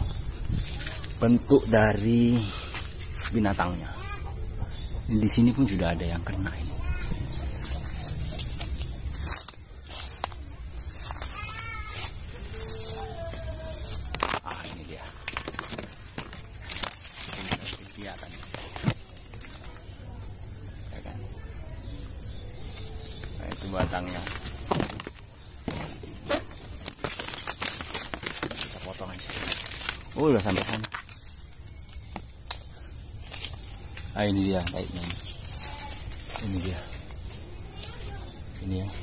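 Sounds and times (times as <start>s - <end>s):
leaves and twigs scraping phone: 0.4s - 4.2s, 6.8s - 20.1s, 22.7s - 38.3s.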